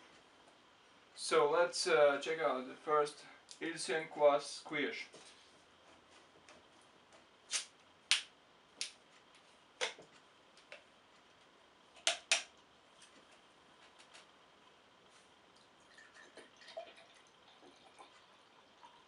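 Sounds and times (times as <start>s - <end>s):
faint drink pouring into glass: 15.6s - 19.0s.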